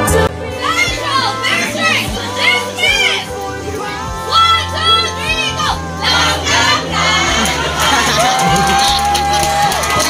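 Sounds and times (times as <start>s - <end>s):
young people shouting: 0.6s - 10.0s.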